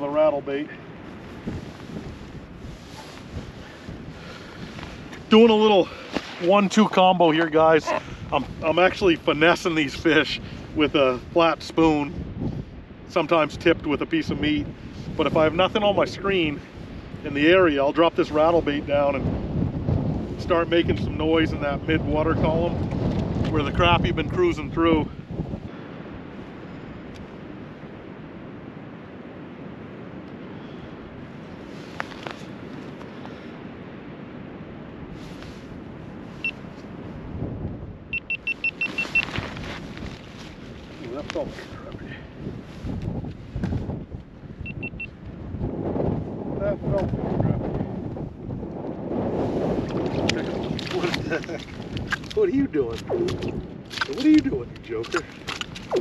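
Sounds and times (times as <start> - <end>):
wind on microphone: 0.0 - 56.0.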